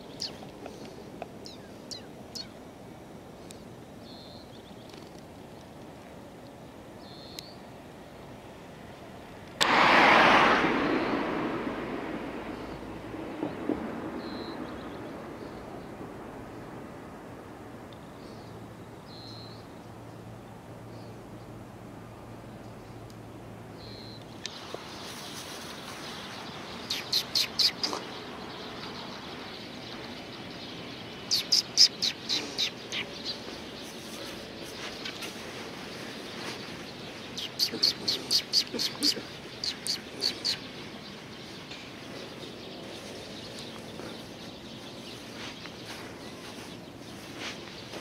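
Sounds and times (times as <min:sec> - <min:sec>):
sparrows chirping: 0:00.0 - 0:02.6, 0:03.4 - 0:05.2, 0:07.0 - 0:07.6, 0:13.6 - 0:16.0, 0:18.1 - 0:20.2, 0:23.7 - 0:48.0
low background noise: 0:00.0 - 0:48.0
vehicle passing with rushing noise: 0:08.4 - 0:17.9, 0:24.5 - 0:48.0.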